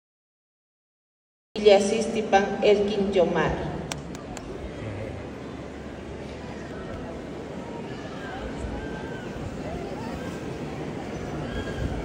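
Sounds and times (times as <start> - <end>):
crowd murmur of indistinct voices: 3.4 - 12.0.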